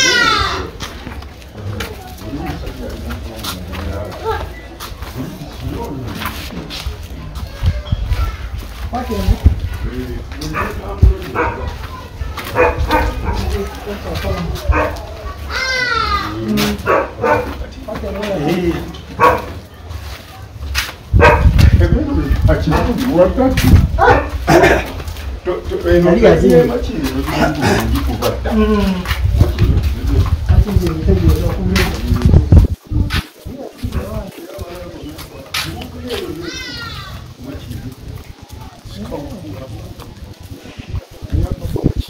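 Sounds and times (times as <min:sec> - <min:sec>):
child's high-pitched call: 0:00.0 - 0:00.7, 0:07.4 - 0:08.6, 0:15.4 - 0:16.3
people talking while walking: 0:00.0 - 0:42.0.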